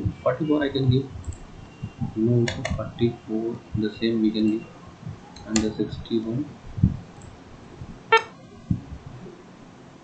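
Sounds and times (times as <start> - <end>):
soft low thumps: 5.0 - 7.2, 7.8 - 9.2
electronic error beep: 8.1 - 8.3.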